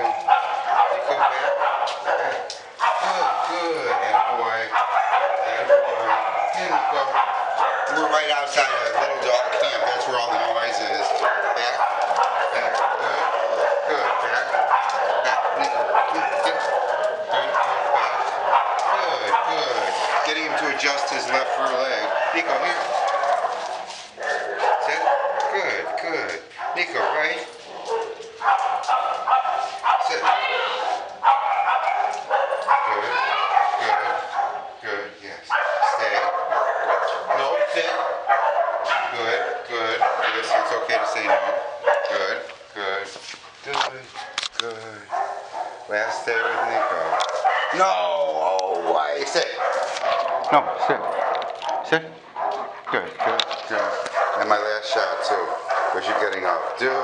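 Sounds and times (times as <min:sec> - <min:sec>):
many dogs barking: 0:00.0 - 0:57.0.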